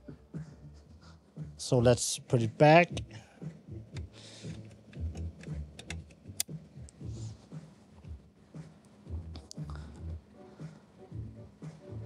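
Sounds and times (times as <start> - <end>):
patch cable clicks and knocks: 3.9 - 6.2
sharp cable click: 4.0 - 6.6.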